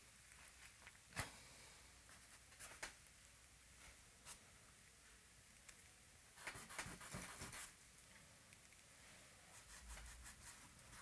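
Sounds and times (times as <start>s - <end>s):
charcoal drawing on paper: 6.4s - 7.8s, 9.5s - 11.0s.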